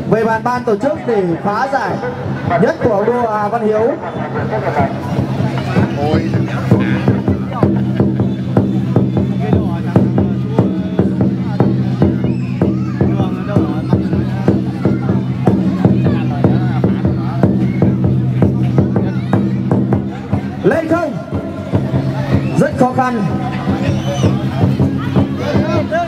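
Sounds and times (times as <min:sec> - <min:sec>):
crowd voices: 0:00.0 - 0:26.0
drum beaten in fast rhythm: 0:00.0 - 0:26.0.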